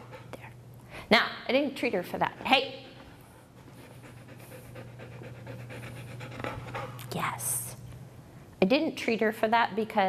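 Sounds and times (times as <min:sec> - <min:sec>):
steady low hum: 0:00.0 - 0:10.0
dog panting rapidly: 0:03.6 - 0:07.0.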